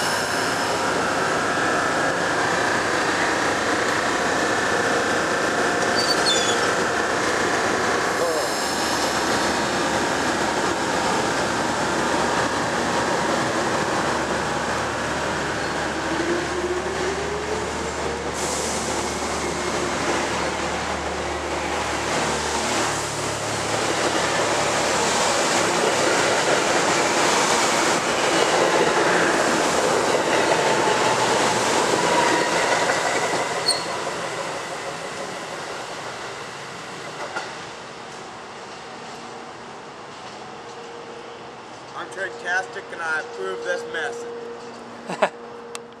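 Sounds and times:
train wheels on rails: 0.0s - 41.0s.

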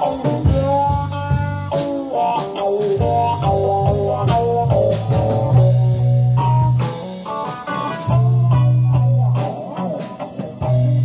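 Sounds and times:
bass guitar: 0.0s - 11.0s
drum kit steady beat: 0.0s - 11.0s
electric guitar melody: 0.0s - 11.0s.

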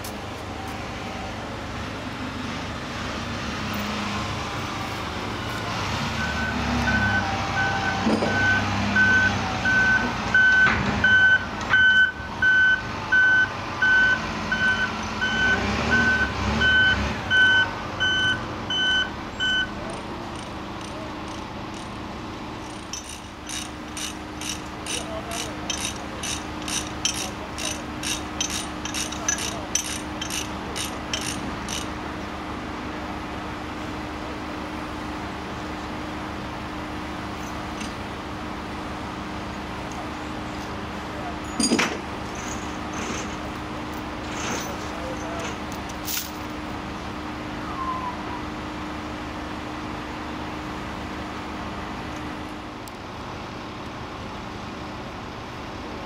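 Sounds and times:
diesel truck engine running: 0.0s - 56.0s
reversing alarm beeping: 6.2s - 19.8s.

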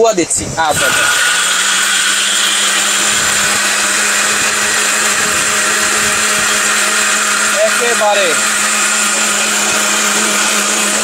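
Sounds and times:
mixer grinder motor whirring: 0.6s - 11.0s.

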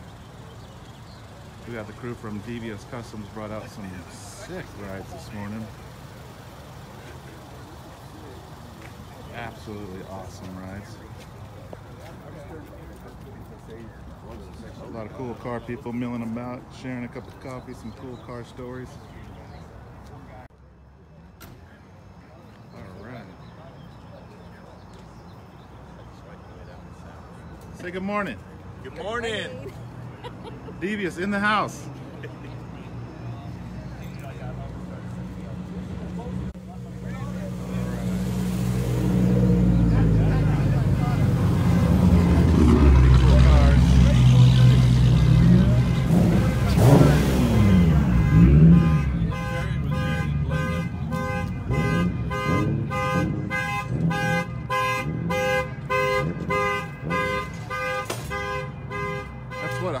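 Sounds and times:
car with loud exhaust revving: 33.7s - 60.0s.

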